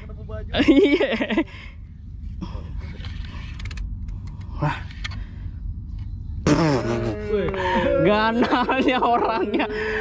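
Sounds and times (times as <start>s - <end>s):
steady low hum: 0.0s - 10.0s
fishing reel and rod creaking: 2.8s - 4.4s.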